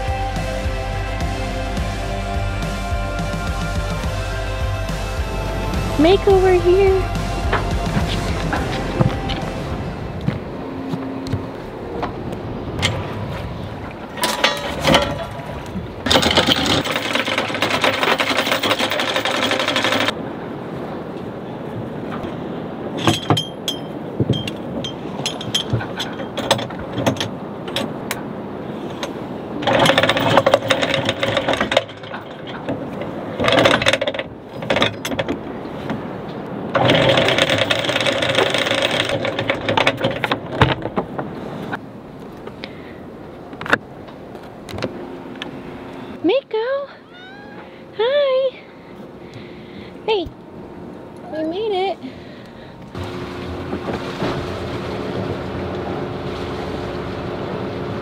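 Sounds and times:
electric anchor windlass running: 0:02.1 - 0:58.0
chain rattling and clanking: 0:14.2 - 0:20.2, 0:23.0 - 0:28.0, 0:28.9 - 0:35.4, 0:36.8 - 0:41.1.

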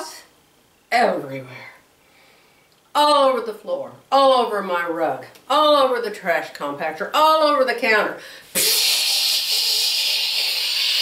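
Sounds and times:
woman hissing with her mouth: 0:08.5 - 0:11.0.

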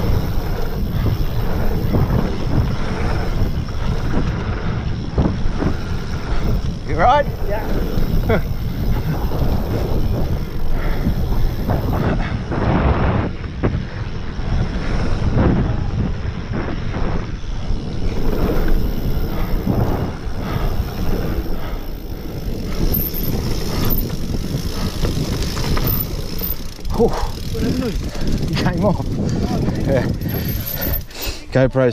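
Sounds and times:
bike rattles and knocks: 0:00.0 - 0:31.3
bike tyre noise: 0:00.0 - 0:31.6
wind rumbling on microphone: 0:00.0 - 0:31.9.

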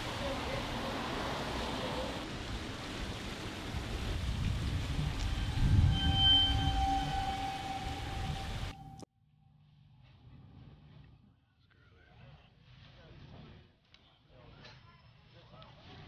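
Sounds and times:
rumble of passing traffic: 0:00.0 - 0:08.8
steady high tone: 0:05.2 - 0:09.1.

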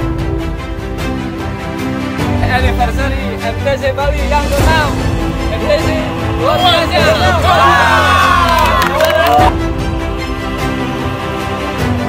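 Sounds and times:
music: 0:00.0 - 0:12.0
group cheering and shouting: 0:05.9 - 0:09.8.

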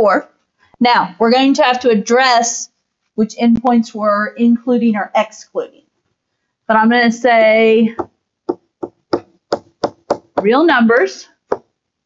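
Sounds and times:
stylus tapping on tablet screen: 0:08.0 - 0:10.6.

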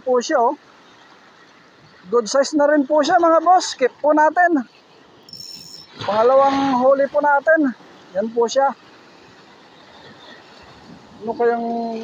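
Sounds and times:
sea surf breaking on rocks: 0:00.0 - 0:12.0.

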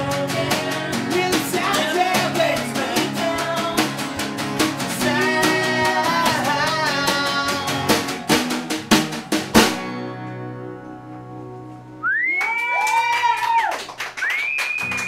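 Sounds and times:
strummed acoustic guitars: 0:00.0 - 0:12.0
snare drum hits: 0:07.9 - 0:09.9.

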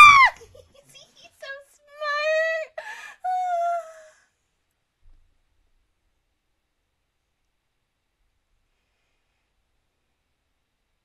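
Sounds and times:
high-pitched vocal cries: 0:00.0 - 0:01.0, 0:02.0 - 0:04.1
person exclaiming excitedly: 0:00.0 - 0:04.0.

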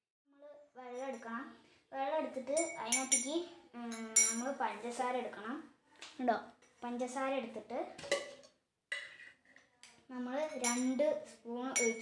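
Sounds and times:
metal spoon clinking against glass: 0:02.5 - 0:04.5, 0:10.5 - 0:11.0, 0:11.8 - 0:12.0.

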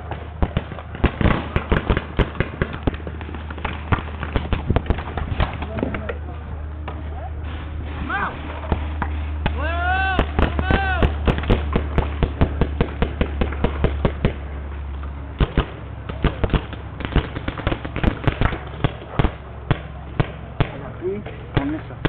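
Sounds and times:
paintball gunfire: 0:00.0 - 0:06.2, 0:08.6 - 0:14.5, 0:15.4 - 0:22.0
people shouting: 0:09.4 - 0:11.4.

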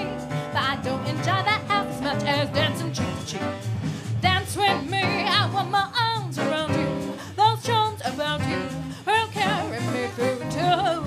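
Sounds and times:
jazz band accompaniment: 0:00.0 - 0:11.0
person singing wordless jazz phrases: 0:04.2 - 0:11.0.

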